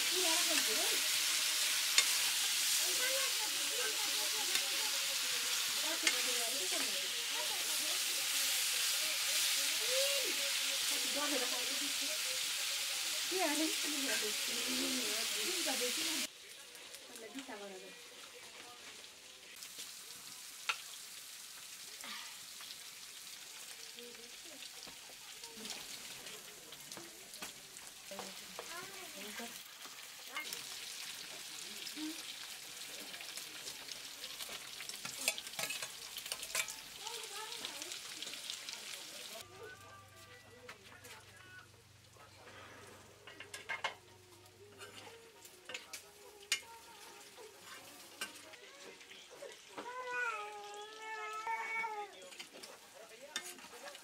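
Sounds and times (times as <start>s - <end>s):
pork sizzling in a wok: 0.0s - 54.0s
spatula scraping: 35.0s - 36.8s.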